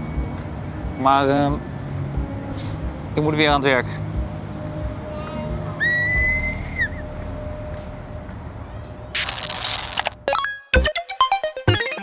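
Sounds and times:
conductor's whistle: 5.8s - 7.1s.

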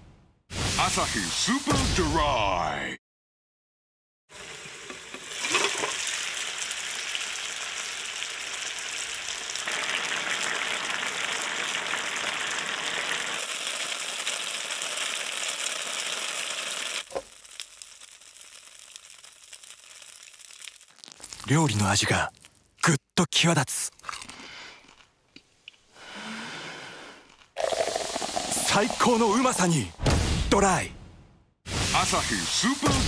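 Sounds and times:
food sizzling in a pan: 4.3s - 21.5s, 27.6s - 29.6s, 31.7s - 33.0s.

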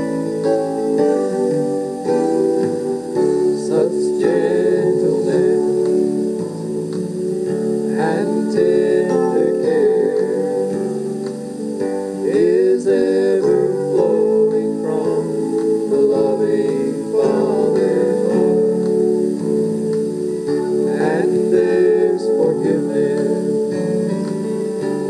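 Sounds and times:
guitar accompaniment: 0.0s - 25.0s
two men singing a duet: 3.5s - 6.2s, 7.9s - 11.0s, 12.2s - 19.0s, 20.7s - 24.2s.

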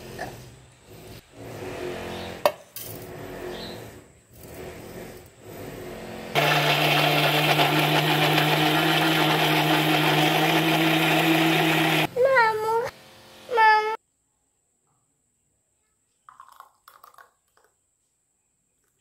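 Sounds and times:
mixer grinder running: 6.3s - 12.1s.

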